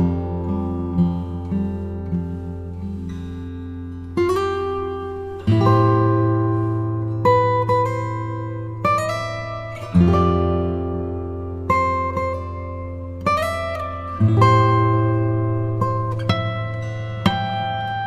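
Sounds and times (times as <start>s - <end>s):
acoustic guitar chords ringing: 0.0s - 18.0s.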